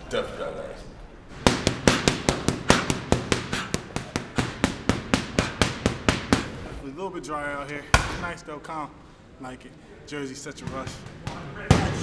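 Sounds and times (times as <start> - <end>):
punches slapping focus mitts: 1.4 - 6.7.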